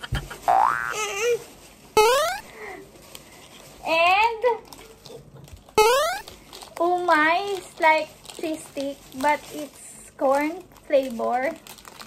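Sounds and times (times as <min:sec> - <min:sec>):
high-pitched vocal squeal: 0:02.0 - 0:02.5, 0:05.8 - 0:06.3.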